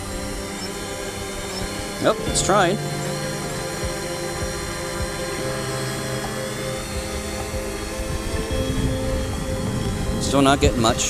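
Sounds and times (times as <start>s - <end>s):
drone propellers whining: 0.0s - 11.0s.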